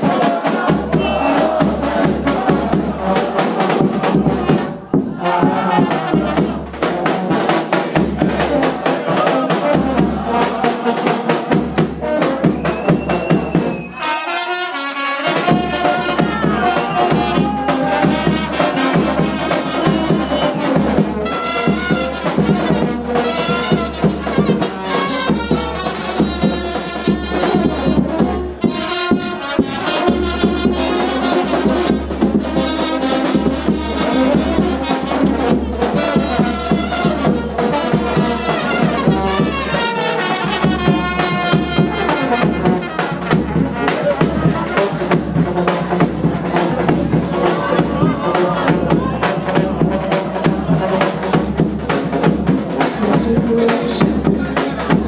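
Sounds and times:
brass band music: 0.0s - 55.0s.

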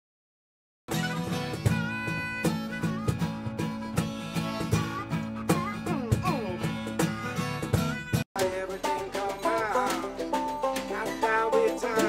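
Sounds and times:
acoustic guitar: 0.9s - 12.0s
harmonica playing: 0.9s - 12.0s.

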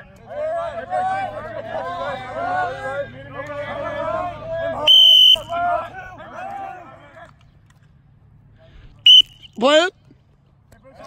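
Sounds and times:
players' voices: 0.0s - 7.8s
shrill whistle blast: 4.9s - 5.6s, 9.1s - 9.6s.

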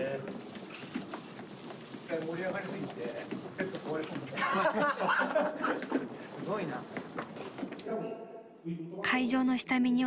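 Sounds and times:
footsteps on hard floor: 0.0s - 7.9s.

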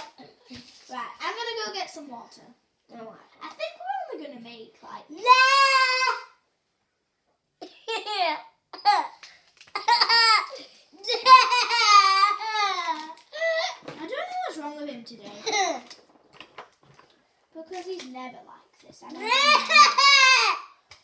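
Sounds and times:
boy laughing and squealing: 9.8s - 13.8s, 19.2s - 20.8s.

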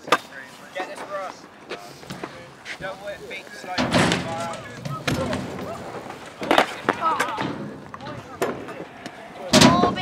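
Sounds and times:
bike tyres rolling on ramp: 1.9s - 10.0s
bike wheels clattering knocks: 3.8s - 8.7s.

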